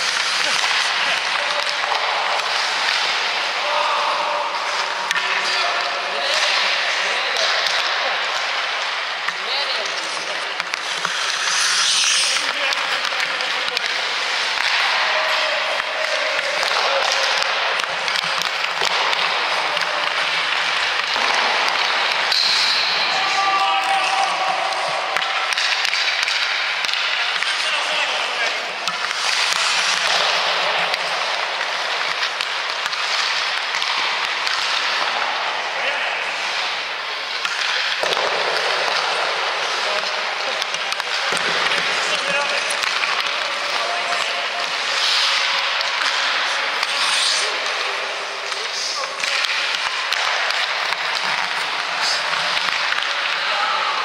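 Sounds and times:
pucks knocking: 0:00.0 - 0:03.8, 0:04.5 - 0:35.6, 0:36.2 - 0:53.5
skate blades scraping ice: 0:00.0 - 0:54.0.

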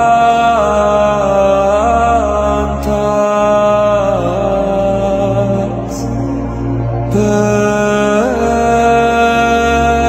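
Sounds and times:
slow sacred chant: 0:00.0 - 0:10.0
steady low drone: 0:00.0 - 0:10.0.

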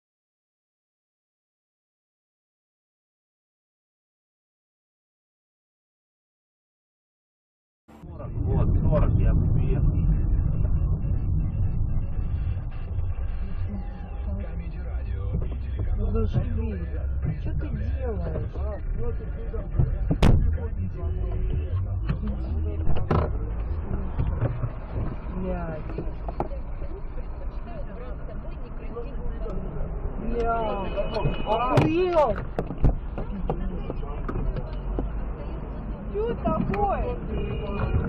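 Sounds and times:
muffled voices: 0:07.9 - 0:38.0
passing traffic: 0:07.9 - 0:38.0
road and engine rumble in car: 0:07.9 - 0:38.0.

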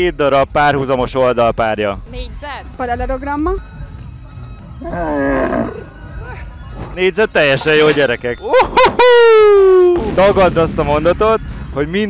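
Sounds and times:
background music: 0:00.0 - 0:12.0
roar-like vocal sound: 0:04.8 - 0:06.0.

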